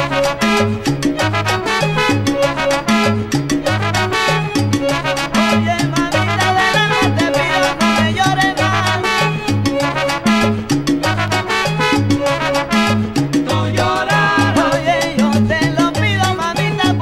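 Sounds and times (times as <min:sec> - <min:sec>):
band instruments playing: 0:00.0 - 0:17.0
stepping bass line: 0:00.0 - 0:17.0.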